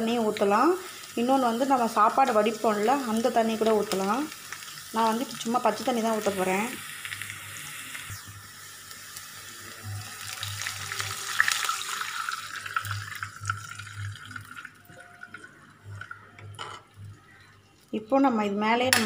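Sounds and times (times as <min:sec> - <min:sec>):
water poured into hot oil hissing: 0:00.0 - 0:15.4.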